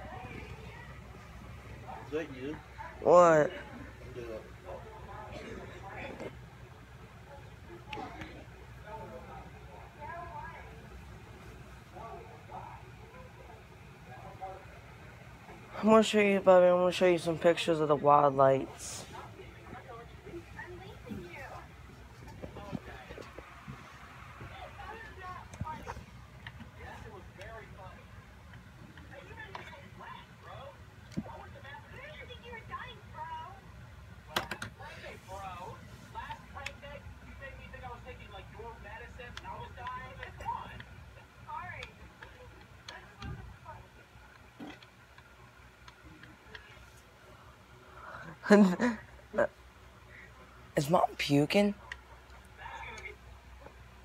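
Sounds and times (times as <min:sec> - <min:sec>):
faint voices talking: 0:00.0 - 0:54.0
low steady hum: 0:00.0 - 0:54.0.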